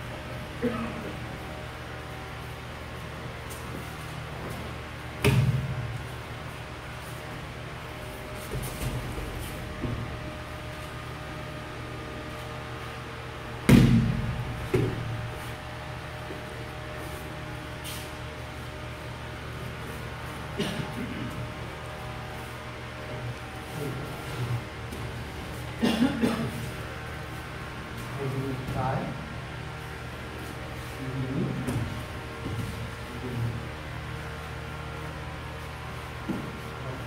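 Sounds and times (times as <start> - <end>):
low room hum: 0.0 - 37.0
body thudding on mats: 5.2 - 6.1, 8.4 - 10.4
feet and knees knocking on mats: 5.2 - 6.1, 8.4 - 10.4, 13.6 - 15.3, 31.5 - 33.0, 36.2 - 36.6.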